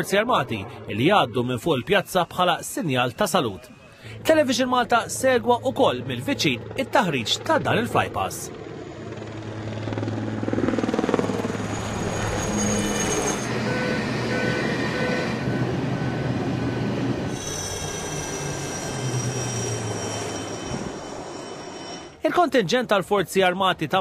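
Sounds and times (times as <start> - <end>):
aircraft turbine engines whining: 0.0 - 22.3.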